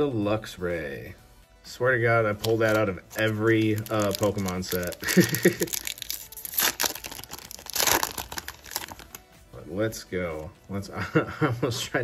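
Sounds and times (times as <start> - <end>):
foil wrapper crinkling and tearing: 2.4 - 9.3.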